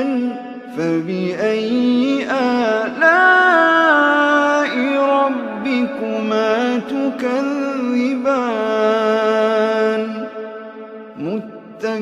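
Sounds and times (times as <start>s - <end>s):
person reciting melodically: 0.0s - 12.0s.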